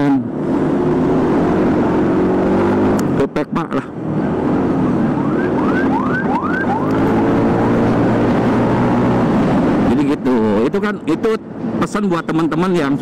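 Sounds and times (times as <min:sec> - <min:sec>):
wind and road noise: 0:00.0 - 0:13.0
rising siren-like whoops: 0:05.1 - 0:07.1.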